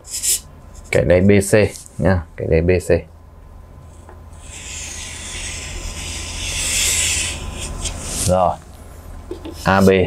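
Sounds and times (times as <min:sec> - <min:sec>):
chalk scratching on chalkboard: 0:00.1 - 0:00.4, 0:04.4 - 0:08.6, 0:09.4 - 0:10.0.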